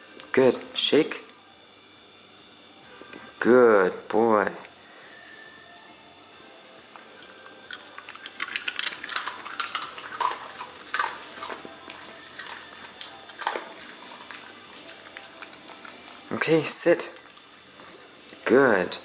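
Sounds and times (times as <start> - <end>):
dog crunching a treat: 7.0 - 18.1
wet mouth smacks and licks: 7.7 - 11.6.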